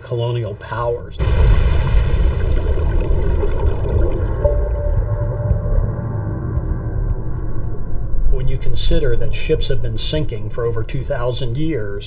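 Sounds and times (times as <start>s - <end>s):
underwater churning water rumble: 1.2s - 10.1s
held tone: 4.3s - 8.4s.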